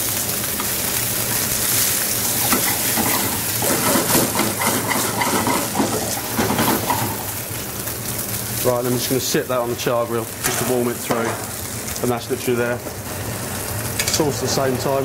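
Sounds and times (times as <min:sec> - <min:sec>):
fish sizzling in a frying pan: 0:00.0 - 0:15.0.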